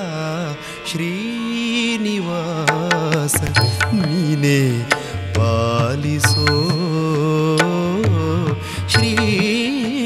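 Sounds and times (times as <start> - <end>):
man singing devotional song: 0.0 - 10.0
percussion strokes: 2.6 - 10.0.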